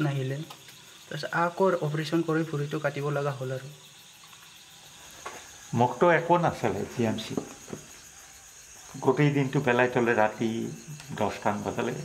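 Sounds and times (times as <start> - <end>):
crickets chirping: 0.0 - 12.0
man speaking: 9.0 - 12.0.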